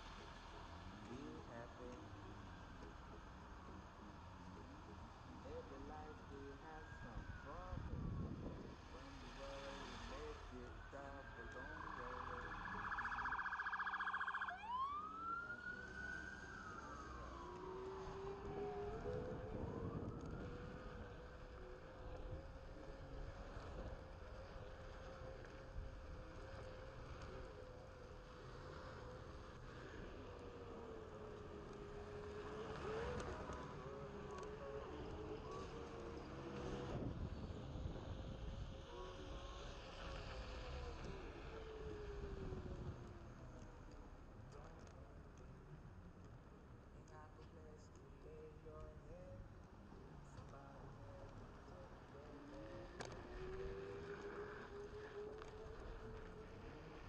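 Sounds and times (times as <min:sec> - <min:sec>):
emergency vehicle siren: 0:00.0 - 0:45.0, 0:50.3 - 0:57.0
wind rumble: 0:07.0 - 0:09.1, 0:18.2 - 0:27.6.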